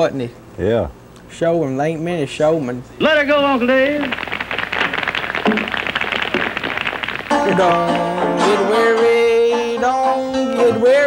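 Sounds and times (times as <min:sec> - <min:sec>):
audience applause: 0:03.4 - 0:08.2.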